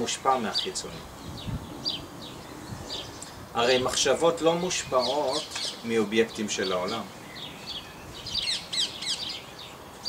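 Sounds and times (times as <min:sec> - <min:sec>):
small bird chirping: 0:06.6 - 0:10.0.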